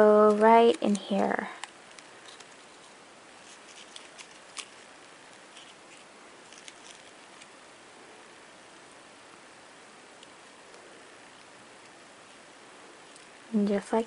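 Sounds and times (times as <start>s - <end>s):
steady hiss: 0.0s - 14.0s
wire stems clicking and rustling: 1.6s - 7.6s.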